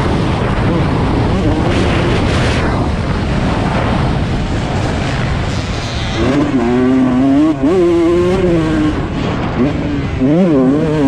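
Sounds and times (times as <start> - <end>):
motocross bike engine revving: 0.0 - 11.0.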